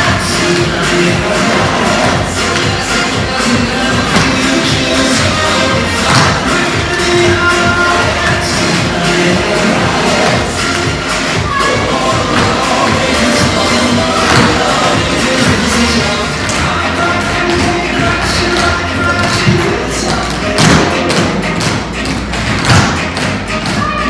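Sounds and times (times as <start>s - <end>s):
loud backing music: 0.0s - 24.0s.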